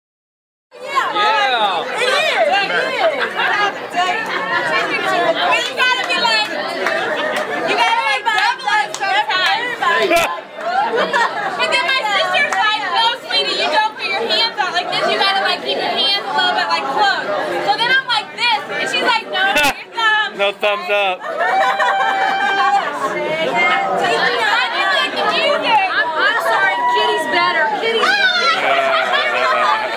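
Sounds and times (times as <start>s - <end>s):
chatter of small group: 0.7s - 29.9s
people talking and laughing: 0.7s - 29.9s.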